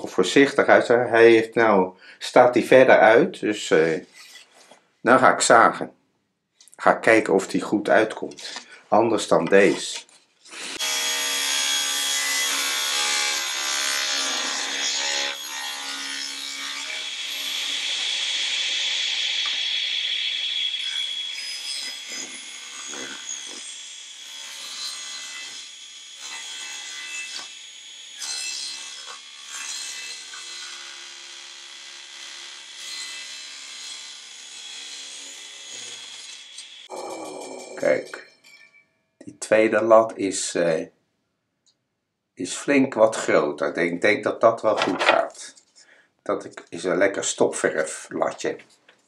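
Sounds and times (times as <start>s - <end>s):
table saw cutting wood: 9.6s - 38.3s
wood knocking: 44.7s - 45.3s.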